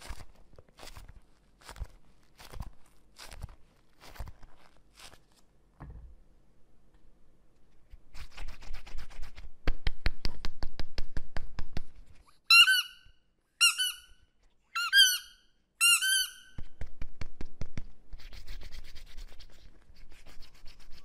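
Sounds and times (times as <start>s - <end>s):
soft rubbing: 0.0s - 5.6s
rubber ball squeaks: 12.5s - 16.7s.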